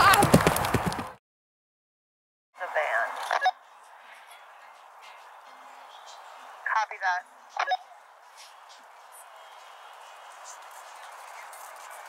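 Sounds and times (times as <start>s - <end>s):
horse galloping on dirt: 0.0s - 1.2s
faint open-air ambience: 2.6s - 12.0s
pitched calls: 2.7s - 12.0s.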